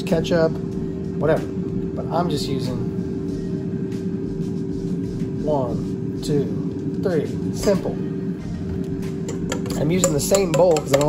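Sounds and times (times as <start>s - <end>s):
air fryer humming: 0.0s - 11.0s.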